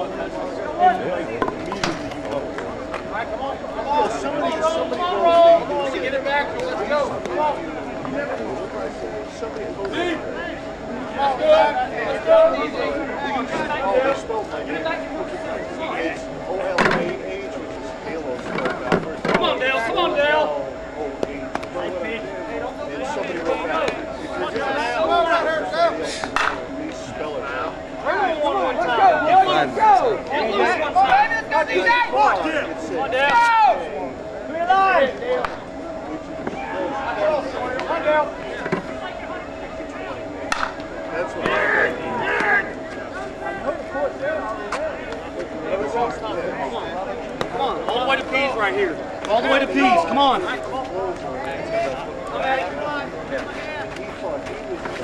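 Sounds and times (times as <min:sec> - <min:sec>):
faint steady hum: 0:00.0 - 0:55.0
people talking and calling out: 0:00.0 - 0:55.0
sharp crack: 0:40.5 - 0:40.9.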